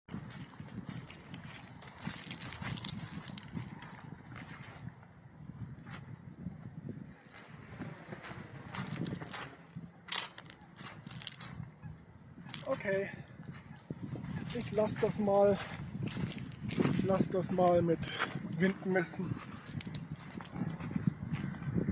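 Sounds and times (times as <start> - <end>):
crackles and rustles: 0.1 - 5.0, 7.1 - 11.7, 12.5 - 21.4
wind buffeting microphone: 0.1 - 21.9.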